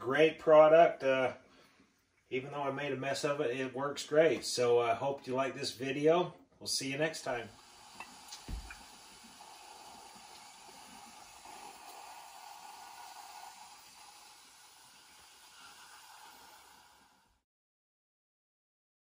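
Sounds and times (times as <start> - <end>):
waffle iron steam hiss and sizzle: 7.1 - 17.4
soft thump: 8.4 - 8.8.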